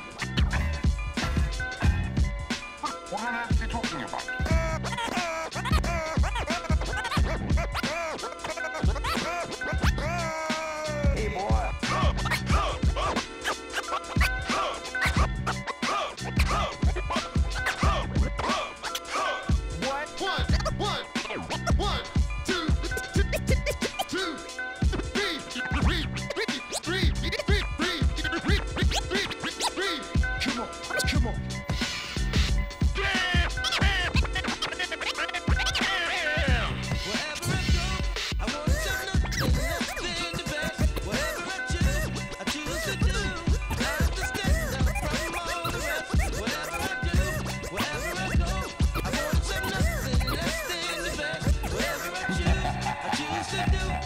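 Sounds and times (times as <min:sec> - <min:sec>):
beat with low bass: 0:00.0 - 0:02.9, 0:03.5 - 0:13.4, 0:14.0 - 0:54.0
turntable scratching: 0:00.0 - 0:54.0.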